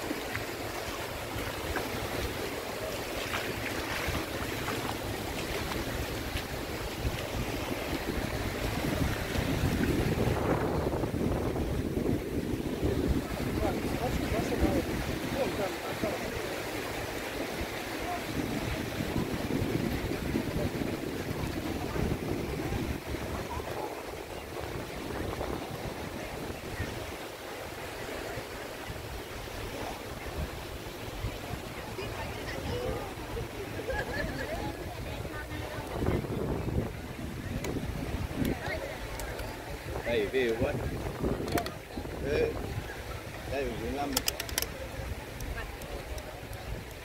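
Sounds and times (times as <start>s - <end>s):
sea waves rushing: 0.0s - 47.0s
wind buffeting microphone: 0.0s - 47.0s.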